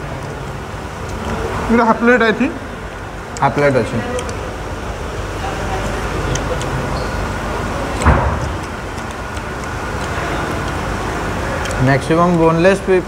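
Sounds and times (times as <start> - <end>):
background rumble and hiss: 0.0 - 13.0.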